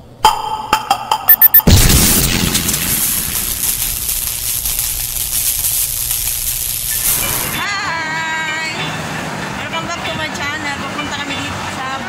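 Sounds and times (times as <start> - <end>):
steady hiss-like noise: 2.2 - 7.6.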